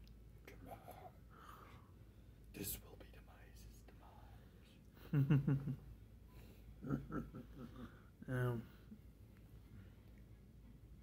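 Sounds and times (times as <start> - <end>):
person whispering: 0.4 - 1.2, 2.5 - 4.8
breathy hiss: 0.6 - 4.8.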